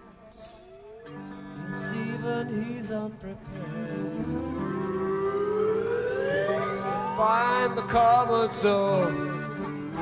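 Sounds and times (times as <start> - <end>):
steady low drone: 3.4 - 8.3
long note gliding upward: 3.8 - 7.8.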